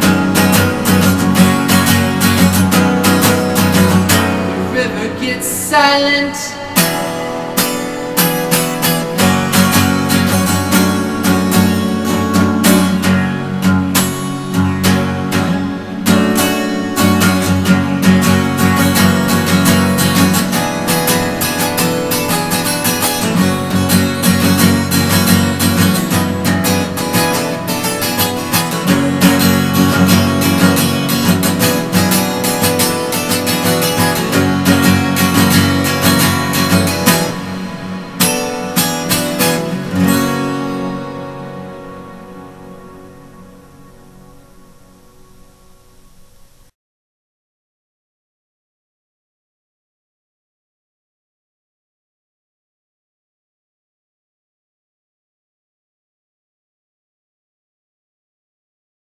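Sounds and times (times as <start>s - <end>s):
acoustic guitar strumming: 0.0s - 46.7s.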